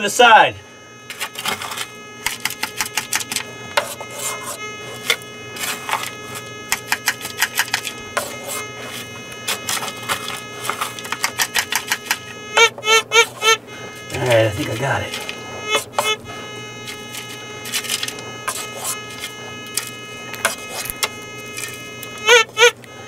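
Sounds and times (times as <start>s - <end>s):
metal detector chirps: 0.0s - 23.0s
metal detector steady tone: 0.0s - 23.0s.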